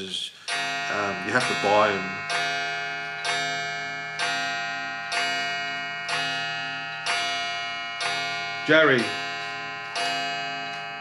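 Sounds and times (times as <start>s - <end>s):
chiming clock striking: 0.4s - 11.0s.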